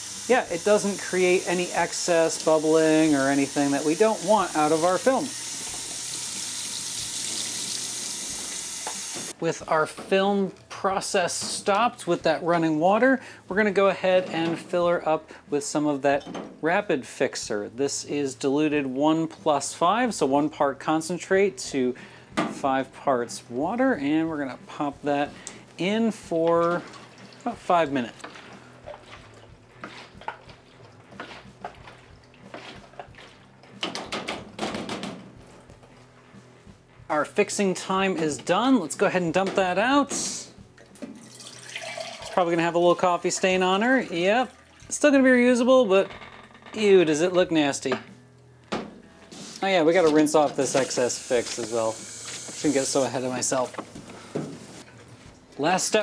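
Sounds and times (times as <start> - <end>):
tap water running into a sink: 0.0 - 9.4, 40.8 - 42.5, 50.6 - 53.0.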